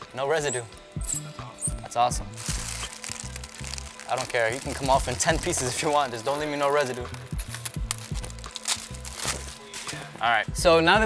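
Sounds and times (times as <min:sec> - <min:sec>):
window tint film crinkling: 0:00.0 - 0:10.2
music with bass beat: 0:00.5 - 0:04.0, 0:04.6 - 0:11.0.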